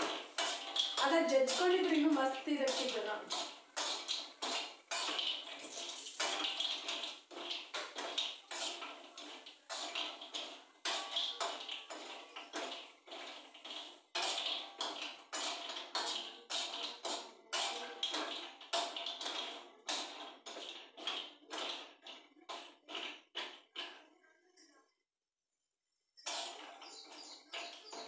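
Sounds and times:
spatula scraping frying pan: 0.0s - 24.0s, 26.2s - 28.0s.

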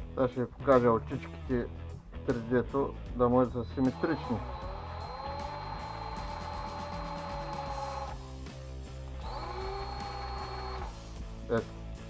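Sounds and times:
background guitar music: 0.0s - 12.0s
cordless drill whining: 3.6s - 8.3s, 8.9s - 11.1s.

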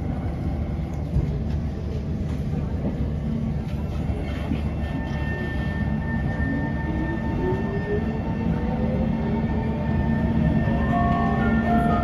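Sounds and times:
train rumble: 0.0s - 12.0s.

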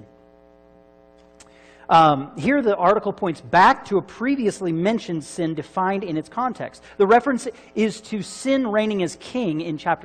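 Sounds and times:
faint mains hum: 0.0s - 10.0s
man speaking: 1.9s - 10.0s.

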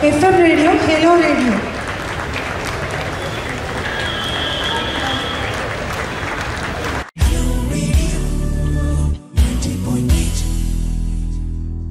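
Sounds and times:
audience applauding: 0.0s - 7.2s
voices: 2.8s - 7.1s
music from sound system: 7.2s - 11.9s.

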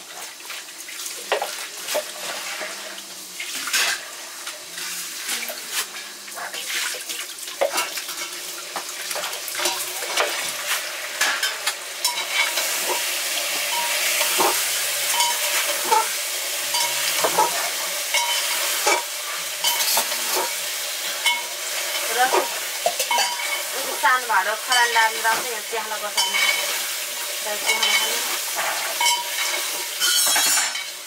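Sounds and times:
food sizzling: 0.0s - 31.0s
metal spoon scraping pan: 13.7s - 24.0s, 26.1s - 26.9s, 27.6s - 30.9s.

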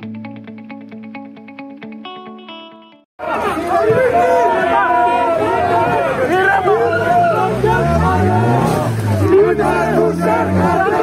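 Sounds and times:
guitar jingle: 0.0s - 3.0s
crowd shouting: 3.2s - 11.0s.

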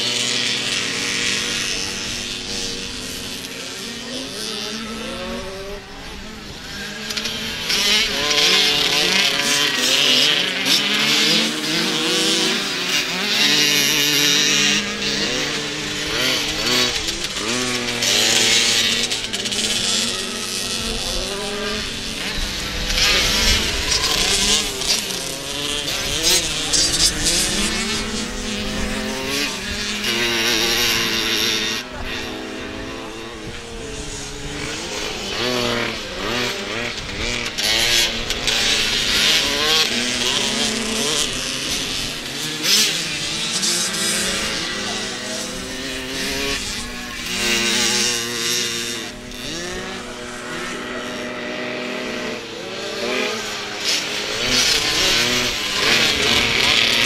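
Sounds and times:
motocross bike engines revving: 0.0s - 57.0s.

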